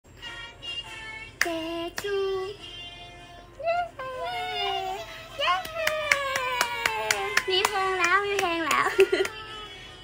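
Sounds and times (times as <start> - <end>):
high-pitched held voice: 3.6 - 5.6
rapid hand clapping: 5.6 - 9.4.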